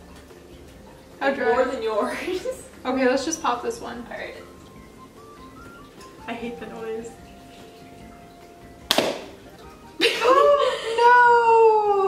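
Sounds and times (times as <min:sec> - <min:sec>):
balloon bursting with sharp pop: 0:08.8 - 0:09.4.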